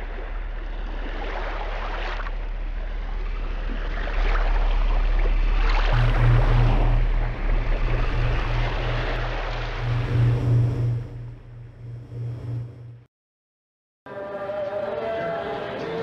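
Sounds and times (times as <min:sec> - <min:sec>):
rushing gurgling water: 0:00.0 - 0:10.9
deep throbbing engine hum: 0:00.0 - 0:13.1.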